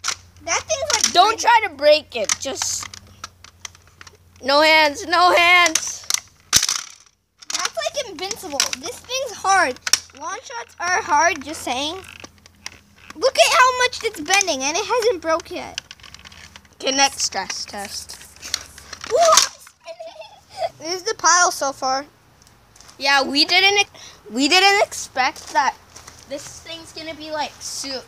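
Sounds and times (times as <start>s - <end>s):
plastic clicks and creaks: 0.0s - 1.4s, 2.2s - 4.5s, 5.6s - 19.8s
child exclaiming: 0.4s - 2.8s, 4.4s - 6.0s, 7.5s - 12.1s, 13.2s - 15.8s, 19.0s - 22.0s, 23.0s - 28.0s
plastic toy blaster cracking: 0.9s - 1.2s, 5.6s - 9.2s, 18.5s - 19.7s.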